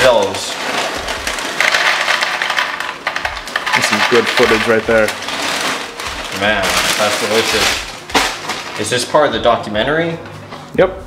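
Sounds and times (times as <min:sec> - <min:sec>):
chips clattering into plastic bowl: 0:00.0 - 0:08.9
plastic bag crinkling: 0:00.0 - 0:09.2.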